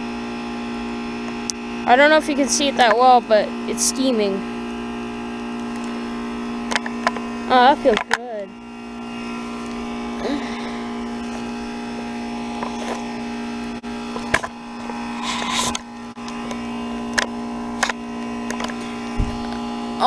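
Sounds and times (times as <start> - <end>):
heat pump humming: 0.0 - 20.0.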